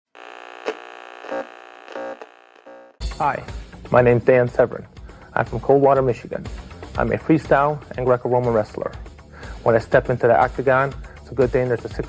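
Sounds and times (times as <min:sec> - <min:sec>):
synthesized buzzing drone: 0:00.1 - 0:03.0.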